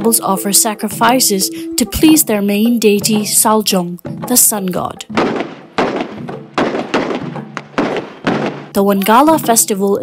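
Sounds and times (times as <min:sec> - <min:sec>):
heavy booming hits: 0:05.1 - 0:08.8.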